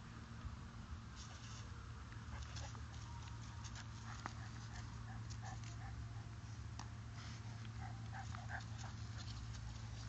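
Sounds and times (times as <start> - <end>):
dog panting: 3.9 - 6.3, 7.3 - 10.0.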